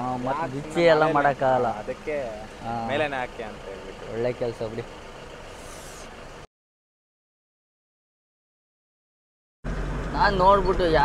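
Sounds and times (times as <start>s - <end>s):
person speaking: 0.0s - 4.8s
truck engine idling: 0.0s - 6.5s, 9.7s - 11.0s.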